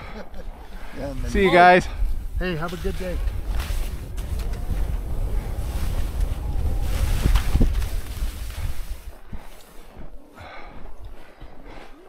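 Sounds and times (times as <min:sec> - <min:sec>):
wind buffeting microphone: 0:00.8 - 0:10.1
skis hissing over snow: 0:00.9 - 0:09.9.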